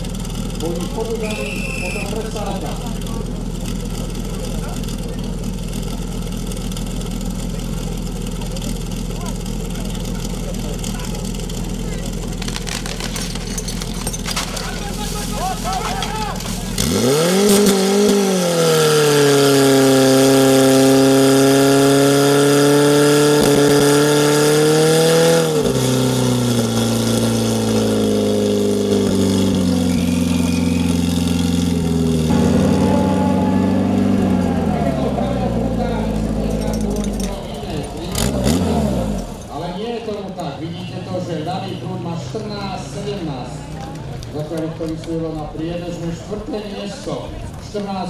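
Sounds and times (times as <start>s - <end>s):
pump engine revving: 0.0s - 39.6s.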